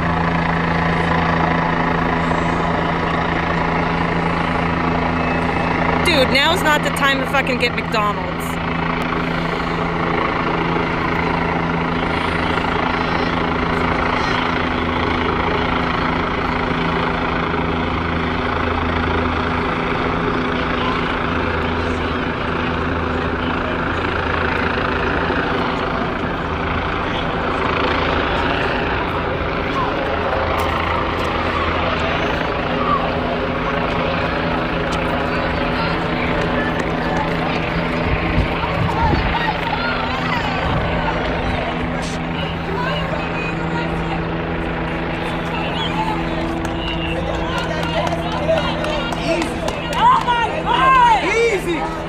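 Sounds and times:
helicopter hovering: 0:00.0 - 0:52.0
people talking on street: 0:00.0 - 0:52.0.

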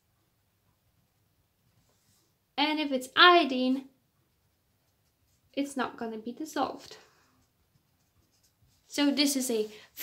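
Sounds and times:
pen scratching on paper: 0:07.4 - 0:09.7.

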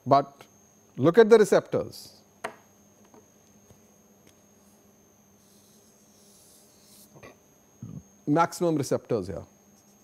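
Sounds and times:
marker drawing on paper: 0:05.4 - 0:07.2.

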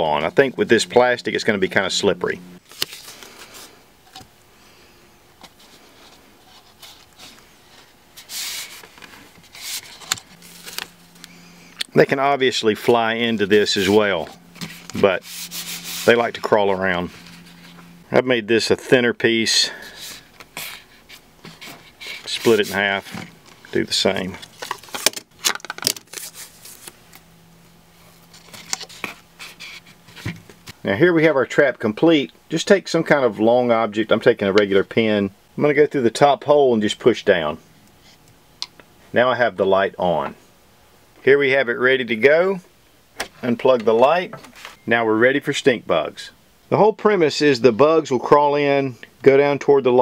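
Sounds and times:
tape rasping rubs: 0:05.4 - 0:11.1, 0:13.4 - 0:18.0, 0:20.0 - 0:23.8, 0:28.2 - 0:30.8.

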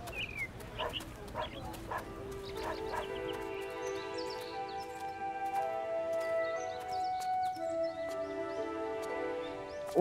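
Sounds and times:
soft background music: 0:00.4 - 0:10.0.

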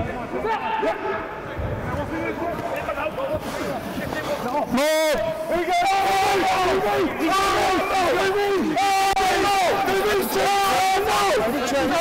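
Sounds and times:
players calling and shouting: 0:00.0 - 0:12.0.

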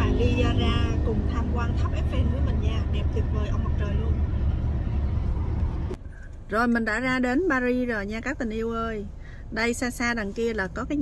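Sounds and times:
car cabin road noise: 0:00.0 - 0:11.0.

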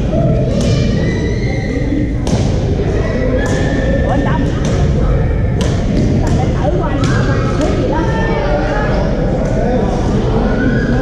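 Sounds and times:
echoing chatter: 0:00.0 - 0:11.0
shoe squeak: 0:00.6 - 0:02.2.

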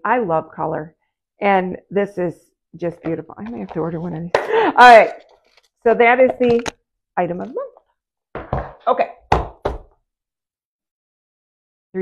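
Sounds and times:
plastic case knocking on table: 0:08.4 - 0:09.9.

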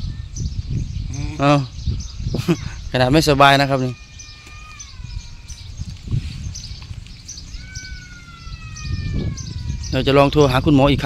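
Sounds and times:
bird whistling: 0:03.8 - 0:10.2.

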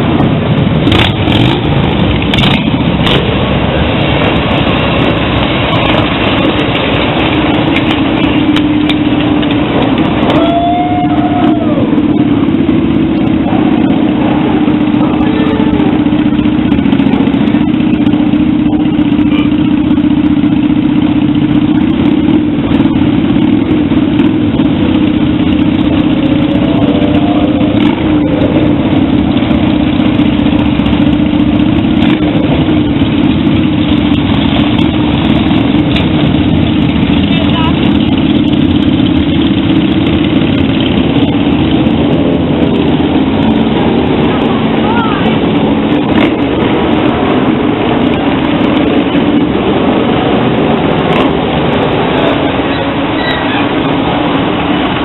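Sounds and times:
motorcycle engines running: 0:00.0 - 0:55.0
voices: 0:03.6 - 0:55.0.

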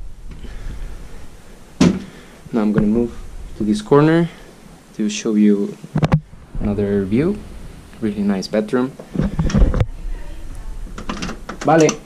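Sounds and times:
handling rumble of camera: 0:05.9 - 0:08.4, 0:09.0 - 0:11.8.

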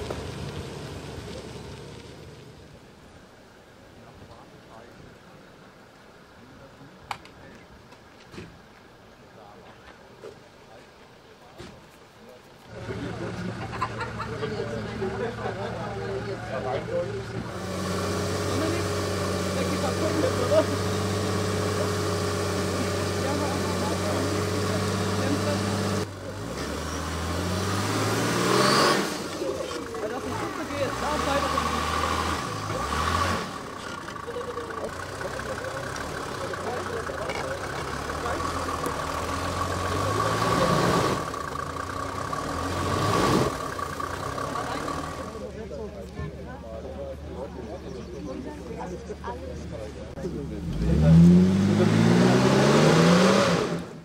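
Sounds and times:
off-road vehicle engine revving: 0:00.0 - 0:02.8, 0:12.7 - 0:54.0.

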